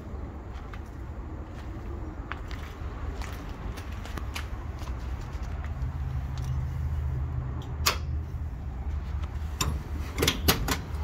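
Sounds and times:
steady low rumble: 0.0 - 11.0
footsteps crunching on gravel: 0.4 - 6.6.

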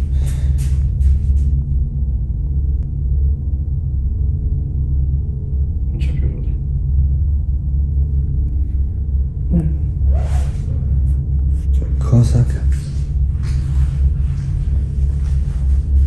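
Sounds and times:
low rumbling drone: 0.0 - 16.0.

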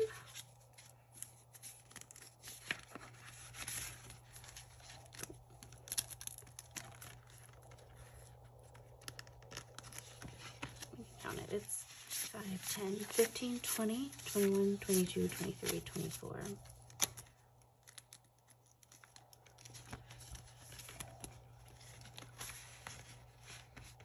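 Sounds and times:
banknotes and plastic rustling: 0.0 - 24.0.

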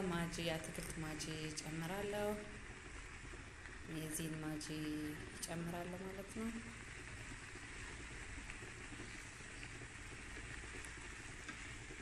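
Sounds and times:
vegetables sizzling in a pan: 0.0 - 12.0.

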